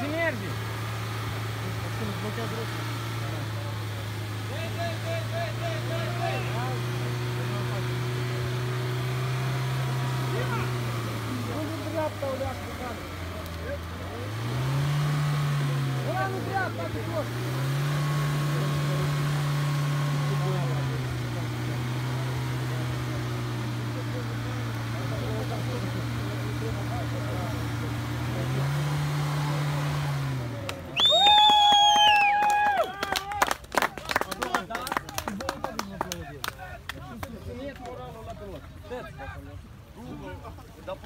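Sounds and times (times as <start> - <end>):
engine revving under load: 0.0 - 33.2
loud shout: 31.0 - 33.6.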